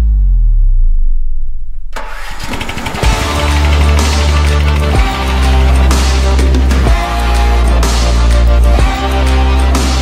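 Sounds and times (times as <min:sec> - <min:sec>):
mower engine starting: 0:01.9 - 0:07.3.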